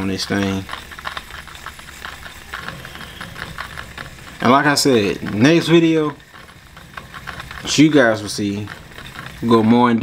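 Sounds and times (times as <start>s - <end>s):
fishing reel ticking: 0.0s - 10.0s.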